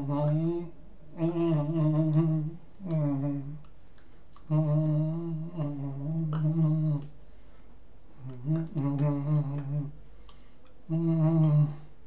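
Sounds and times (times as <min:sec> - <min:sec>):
man humming: 0:00.0 - 0:03.7, 0:04.4 - 0:07.2, 0:08.2 - 0:10.0, 0:10.9 - 0:12.0.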